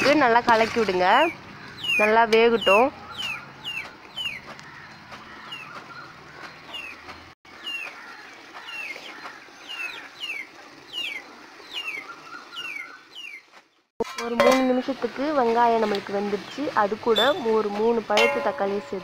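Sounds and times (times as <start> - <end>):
bird peeping: 1.6 - 7.9.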